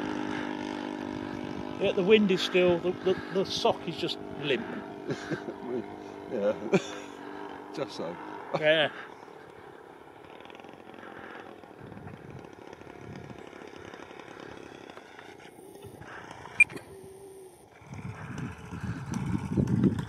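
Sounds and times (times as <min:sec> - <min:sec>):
model plane engine running: 0:00.0 - 0:20.0.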